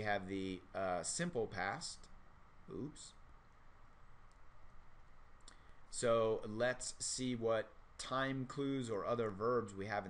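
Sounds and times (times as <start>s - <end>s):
low room hiss: 0.0s - 10.0s
faint clicks and taps: 4.2s - 4.8s.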